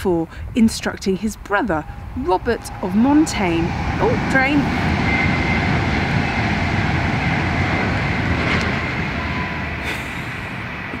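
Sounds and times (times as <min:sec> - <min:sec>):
train rumbling past: 0:00.6 - 0:11.0
faint high whine: 0:01.2 - 0:09.8.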